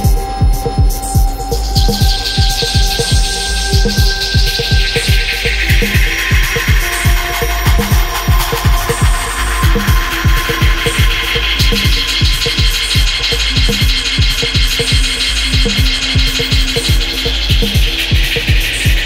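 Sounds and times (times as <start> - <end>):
minimal electronic track: 0.0 - 19.0.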